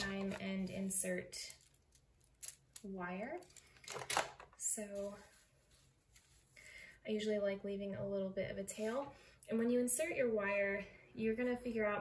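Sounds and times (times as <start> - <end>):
person speaking: 0.0 - 1.6.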